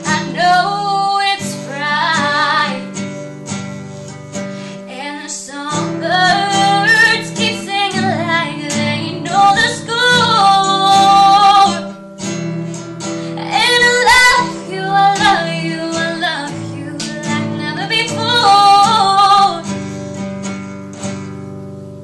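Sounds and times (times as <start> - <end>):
woman singing: 0.0 - 3.2, 4.7 - 12.1, 13.3 - 19.8
classical guitar strumming: 0.0 - 22.0.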